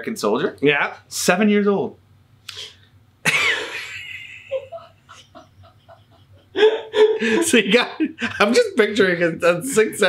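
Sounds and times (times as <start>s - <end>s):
man laughing: 3.3s - 9.0s.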